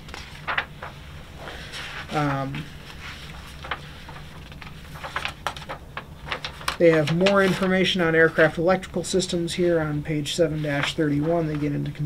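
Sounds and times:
book pages rustling: 0.0s - 8.8s, 10.4s - 12.0s
man speaking: 6.8s - 12.0s.

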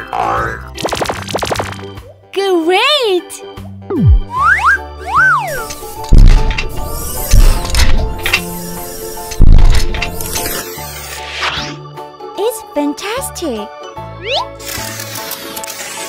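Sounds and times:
falling whistle: 4.3s - 5.6s.

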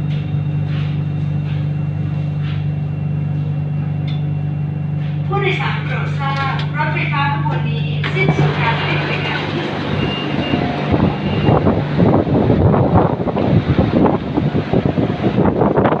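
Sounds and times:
stopped train hum: 0.0s - 16.0s
wind rumbling on microphone: 8.2s - 16.0s.

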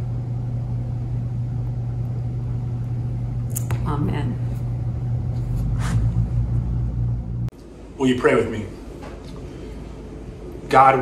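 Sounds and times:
low rumbling hum: 0.0s - 10.8s.

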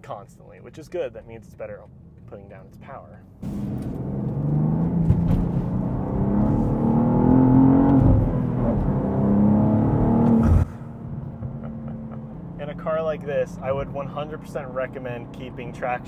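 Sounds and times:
cabin drone: 3.4s - 12.6s
car engine accelerating hard: 3.4s - 15.8s.

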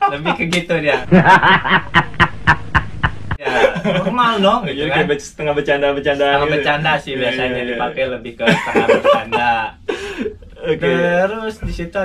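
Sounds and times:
man laughing loudly: 0.0s - 4.2s, 8.5s - 10.2s.

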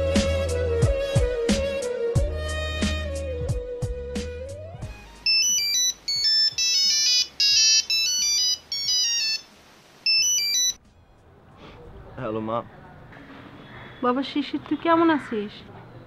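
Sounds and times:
background music: 0.0s - 7.8s
electronic phone ringtone: 5.2s - 10.8s.

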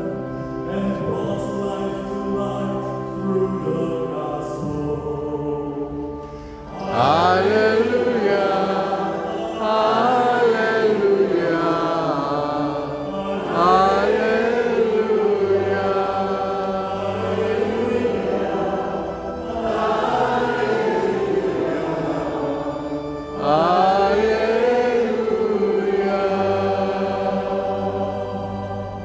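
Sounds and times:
low keyboard notes: 0.0s - 29.0s
person singing chant: 0.0s - 29.0s.

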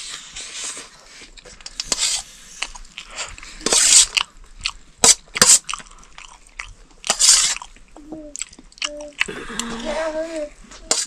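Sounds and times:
chewing: 0.4s - 11.0s.

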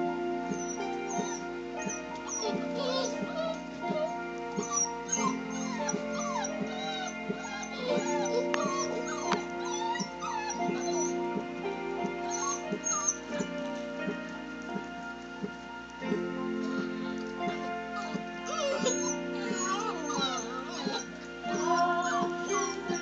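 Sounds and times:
puppies whimpering: 0.0s - 14.4s, 16.1s - 23.0s
background music with held tones: 0.0s - 23.0s.

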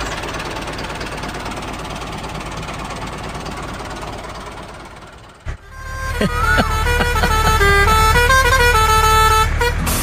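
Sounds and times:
low engine-like rumble: 0.0s - 10.0s
vehicle horn playing a tune: 5.5s - 10.0s.

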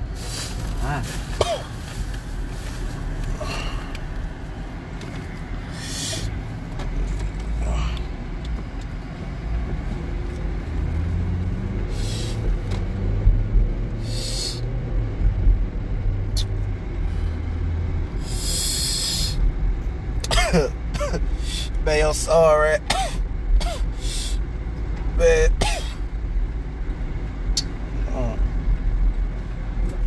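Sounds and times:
car road rumble: 0.0s - 30.0s
short hissing rushes: 5.7s - 6.3s, 11.9s - 12.4s, 14.0s - 14.6s, 18.2s - 19.4s.

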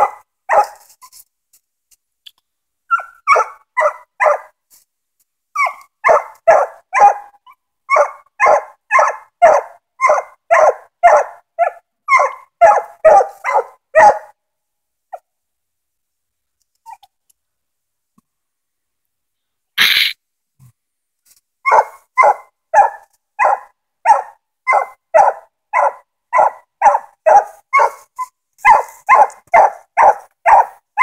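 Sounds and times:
dog barking: 0.0s - 0.8s, 2.9s - 4.6s, 5.6s - 14.4s, 21.6s - 28.0s, 28.6s - 31.0s.

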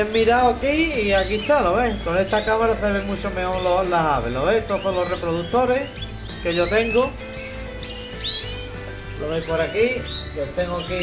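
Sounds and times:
canaries chirping: 0.0s - 11.0s.

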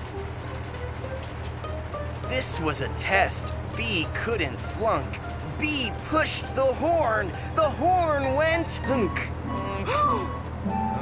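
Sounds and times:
cartoon tractor engine rumble: 0.0s - 11.0s
soft background music: 0.0s - 11.0s.

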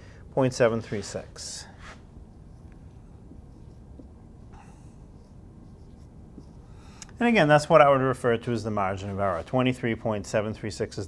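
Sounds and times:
marker writing on whiteboard: 0.6s - 7.6s.

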